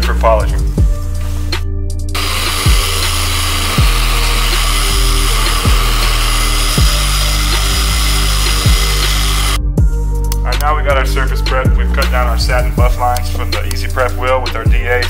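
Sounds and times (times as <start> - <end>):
hip-hop music with deep bass: 0.0 - 15.0
orbital sander hissing on metal: 2.1 - 9.6.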